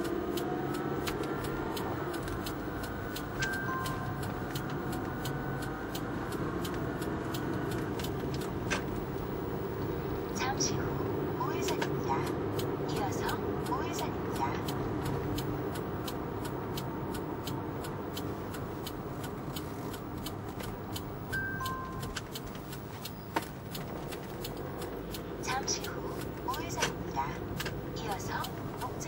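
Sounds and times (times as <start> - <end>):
faint fast ticking: 0.0 - 29.0
road and engine rumble: 0.0 - 29.0.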